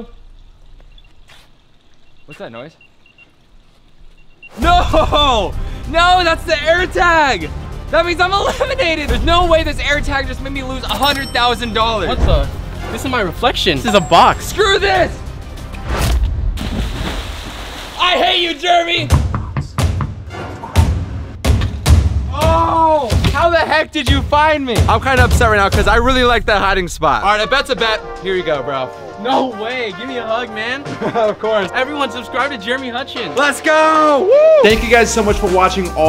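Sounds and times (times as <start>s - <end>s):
faint high electronic chirps: 0.0s - 4.6s
splash into pool: 16.0s - 18.3s
churned water rushing: 16.6s - 18.6s.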